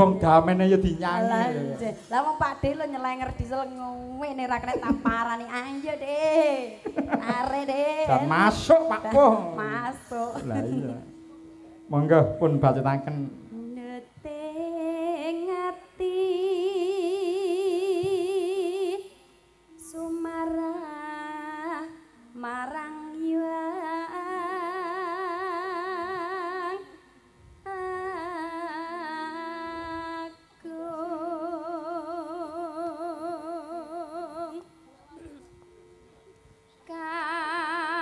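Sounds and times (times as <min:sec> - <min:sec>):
woman singing long notes: 0:00.0 - 0:38.0.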